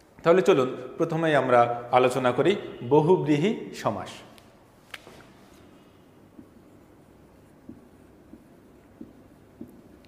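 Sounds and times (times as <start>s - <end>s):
marker writing on whiteboard: 5.2s - 10.0s
pen tapping on whiteboard: 7.4s - 10.0s.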